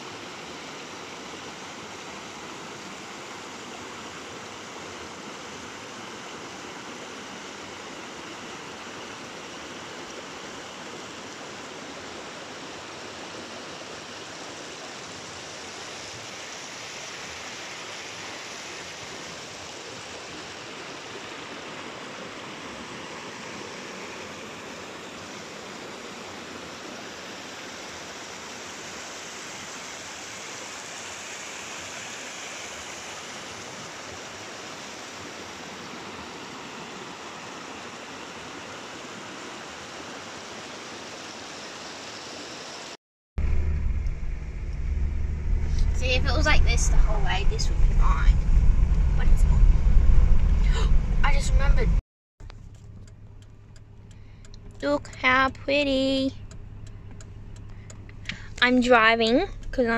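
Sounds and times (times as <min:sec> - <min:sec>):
river rushing over rocks: 0:00.0 - 0:43.0.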